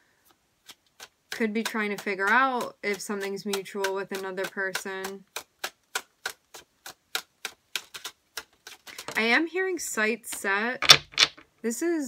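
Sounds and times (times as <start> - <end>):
cards being shuffled: 5.0 - 9.3, 10.3 - 11.4.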